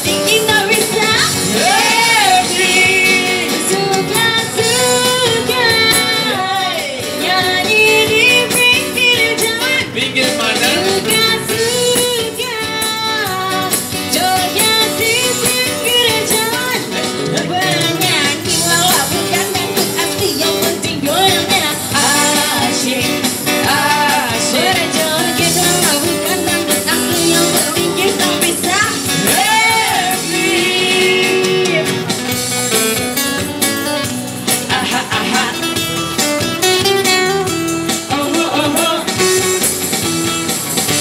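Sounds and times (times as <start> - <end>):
woman singing through microphone: 0.0 - 32.1
busking band with guitar: 0.0 - 41.0.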